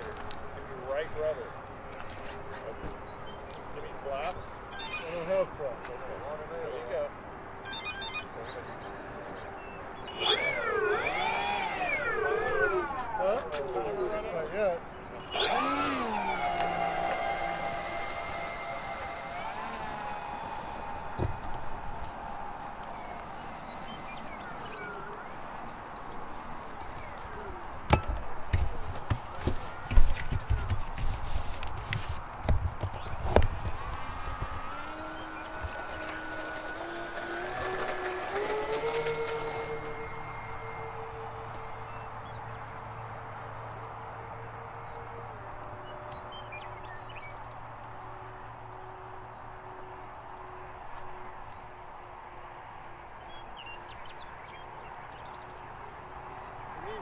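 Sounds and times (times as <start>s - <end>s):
electric motors and propellers whining: 4.0s - 8.4s, 9.4s - 52.0s.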